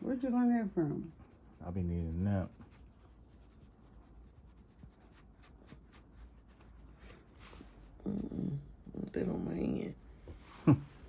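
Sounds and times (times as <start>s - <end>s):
scratching scalp through hair: 0.0s - 10.1s.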